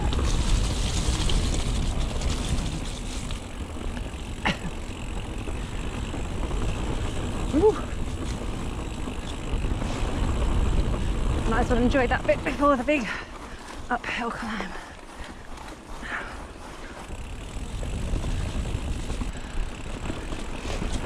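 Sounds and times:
bike tyres rumbling on dirt trail: 0:00.0 - 0:21.0.

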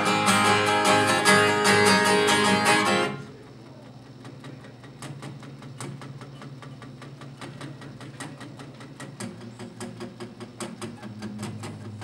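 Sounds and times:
acoustic guitar picking: 0:00.0 - 0:12.0.

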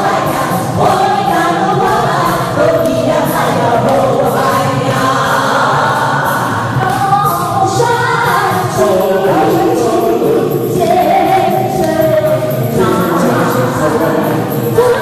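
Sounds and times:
women singing into microphones: 0:00.0 - 0:15.0.

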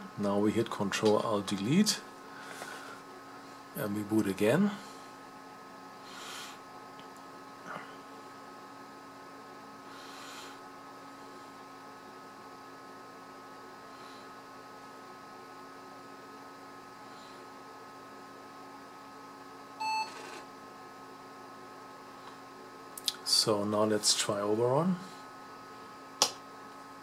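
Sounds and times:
computer hum: 0:00.0 - 0:27.0.

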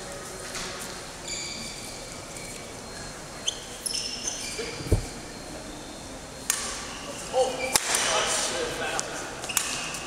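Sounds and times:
hall room noise: 0:00.0 - 0:10.0.

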